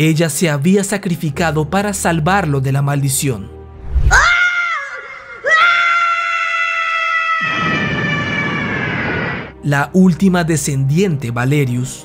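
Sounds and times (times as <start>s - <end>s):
high-pitched scream: 4.1s - 9.5s.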